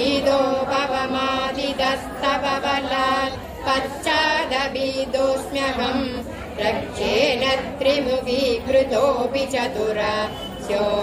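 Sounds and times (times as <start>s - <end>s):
group chanting in unison: 0.0s - 11.0s.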